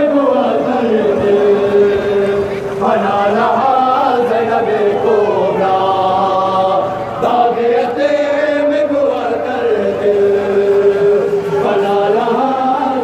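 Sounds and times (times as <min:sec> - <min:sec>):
man chanting a lament: 0:00.0 - 0:13.0.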